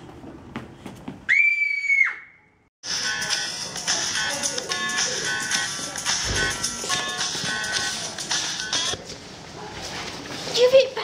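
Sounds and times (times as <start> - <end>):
background music: 2.8 - 9.0.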